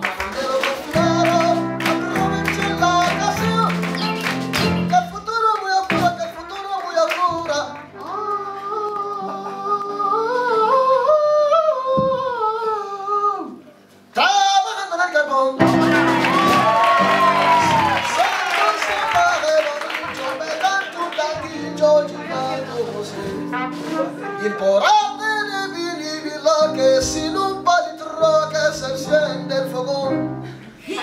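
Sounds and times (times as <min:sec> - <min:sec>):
young man singing: 0:00.0 - 0:16.8, 0:17.4 - 0:31.0.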